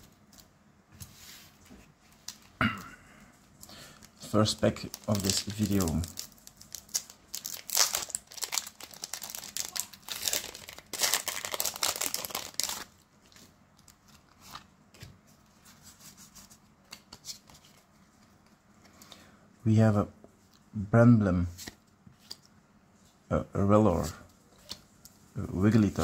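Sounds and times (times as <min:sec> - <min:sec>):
foil pack tearing and crinkling: 0:04.7 - 0:12.9.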